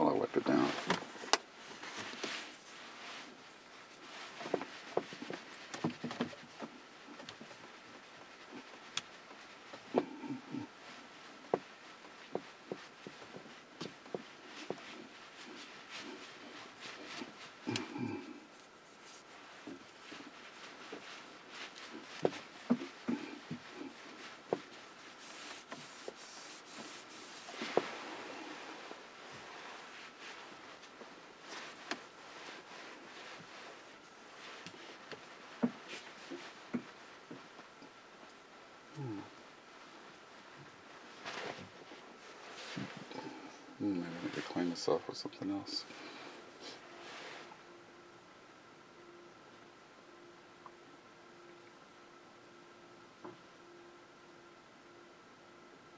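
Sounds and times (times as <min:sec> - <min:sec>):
rustling of handling things: 0:00.0 - 0:47.8.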